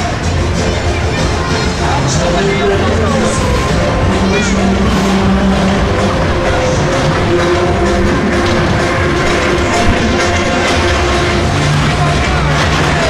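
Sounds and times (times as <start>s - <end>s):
coaster ride rumbling on track: 0.0s - 13.0s
crowd voices: 0.0s - 13.0s
loud fairground music: 0.0s - 13.0s.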